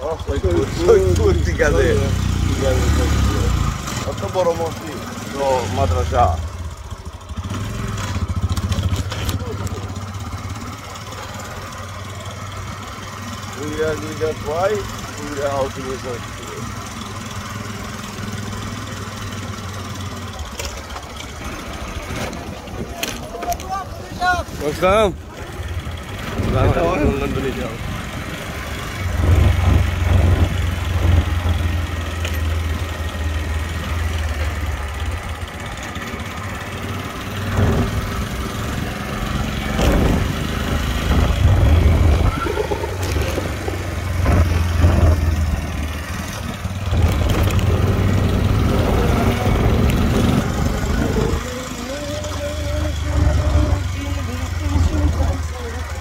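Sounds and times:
voices talking: 0.0s - 7.4s, 8.0s - 56.0s
small engine running: 24.6s - 56.0s.

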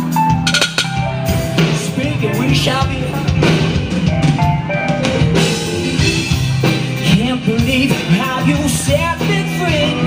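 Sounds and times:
drum kit: 0.0s - 10.0s
live rock band playing: 0.0s - 10.0s.

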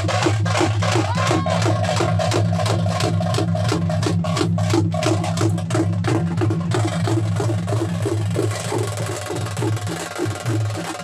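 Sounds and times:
fast stick drumming: 0.0s - 11.0s.

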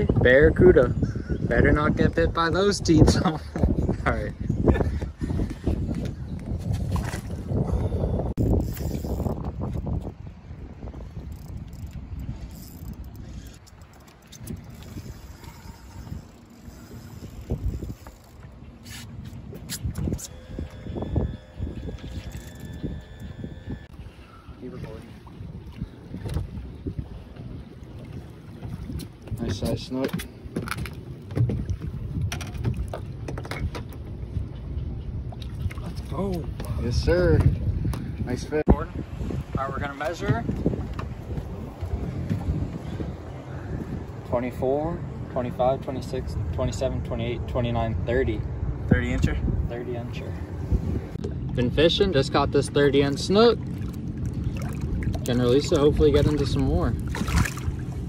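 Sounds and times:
wind buffeting microphone: 0.0s - 58.0s
water lapping at boat hull: 2.7s - 58.0s.

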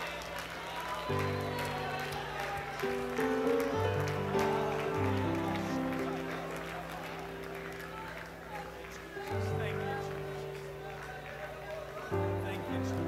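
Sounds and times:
soft sustained chords: 0.0s - 13.0s.

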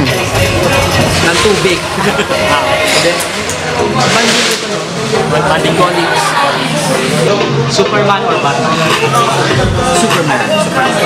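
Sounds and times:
background music: 0.0s - 11.0s
man laughing: 2.0s - 2.7s.

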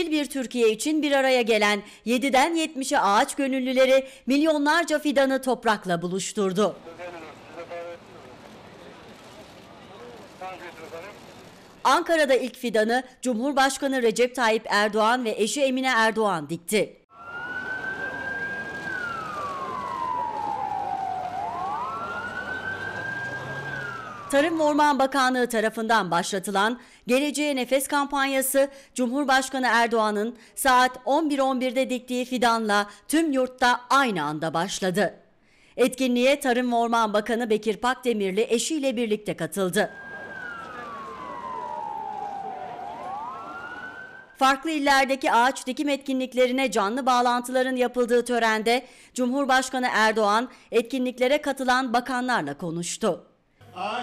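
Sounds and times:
outdoor background noise: 0.0s - 54.0s
siren wailing: 17.1s - 24.9s, 39.8s - 44.5s.

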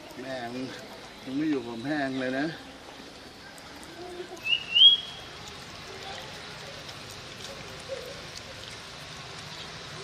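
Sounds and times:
high whistle-like animal call: 4.4s - 5.2s.

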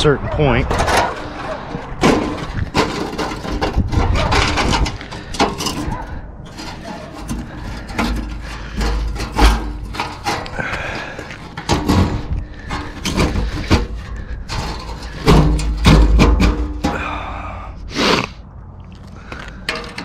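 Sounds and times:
wind rumble on microphone: 0.0s - 8.0s, 11.8s - 16.0s
knocks and scrapes of chimney cover: 0.7s - 17.0s.

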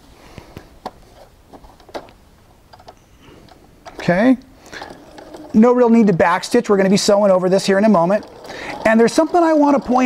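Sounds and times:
sewing machine ticking: 4.7s - 10.0s.

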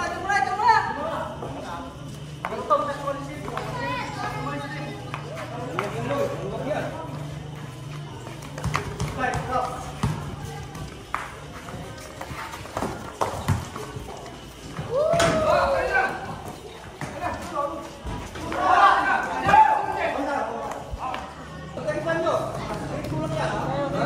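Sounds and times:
people shouting and talking: 0.0s - 24.0s
basketball bouncing on concrete: 8.4s - 15.4s.

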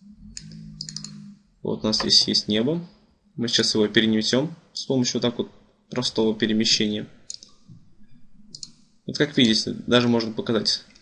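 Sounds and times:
mouse button clicking: 0.4s - 1.2s.

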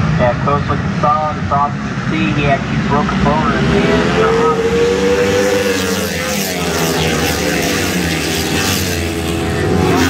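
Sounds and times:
motorcycle engines racing past: 1.6s - 10.0s.

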